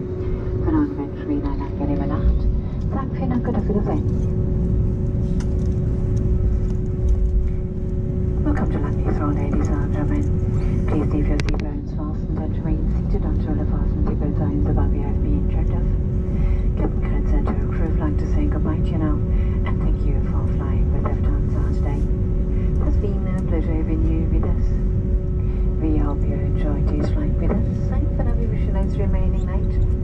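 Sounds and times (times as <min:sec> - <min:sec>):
constant hum tone: 0:00.0 - 0:30.0
low engine rumble: 0:00.0 - 0:30.0.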